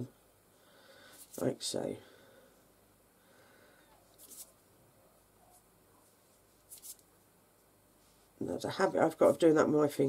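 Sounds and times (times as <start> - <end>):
fingertips rubbing together: 4.2 - 4.6, 6.6 - 7.0.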